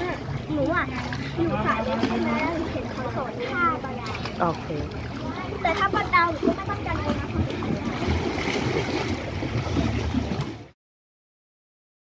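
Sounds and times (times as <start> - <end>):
pool water sloshing: 0.0 - 10.8.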